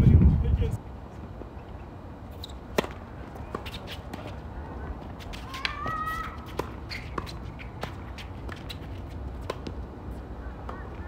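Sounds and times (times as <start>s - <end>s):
racket hitting tennis ball: 2.7s - 4.4s, 5.3s - 9.8s.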